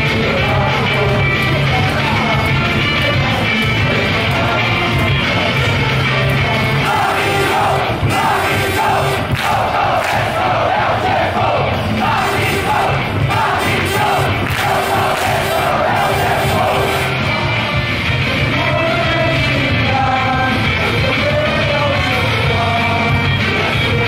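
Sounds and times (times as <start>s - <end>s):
crowd chanting: 0.0s - 20.2s
cheer song over loudspeakers: 0.0s - 24.0s.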